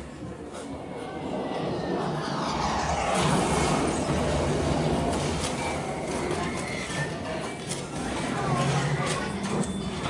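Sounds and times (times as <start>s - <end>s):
loud noise: 1.2s - 7.3s.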